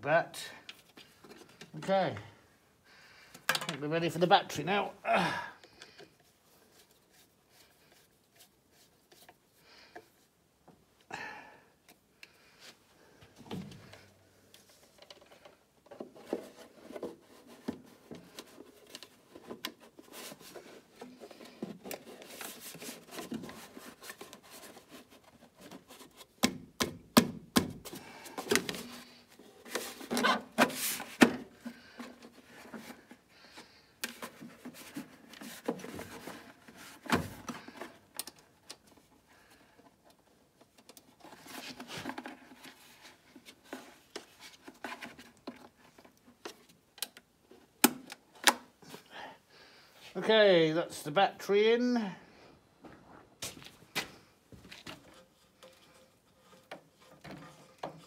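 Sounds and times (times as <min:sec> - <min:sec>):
plastic and metal clicks and knocks: 0:03.3 - 0:03.8.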